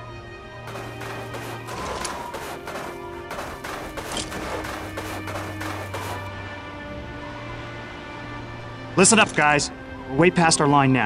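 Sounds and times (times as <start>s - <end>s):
gunfire sound effects: 0.7s - 6.3s.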